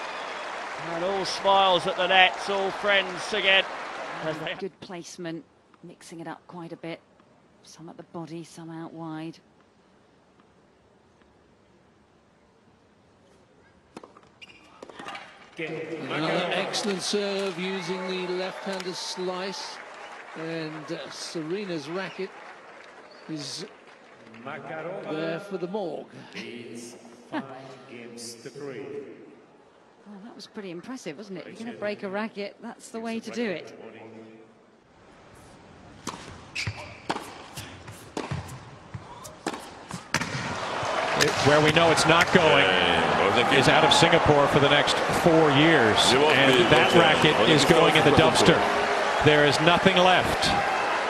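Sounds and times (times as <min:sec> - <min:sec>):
racket hitting tennis ball: 0:36.0 - 0:40.6.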